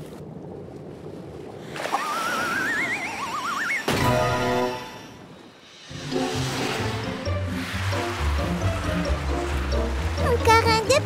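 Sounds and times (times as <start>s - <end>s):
rising warbling whistle tones: 1.9s - 6.3s.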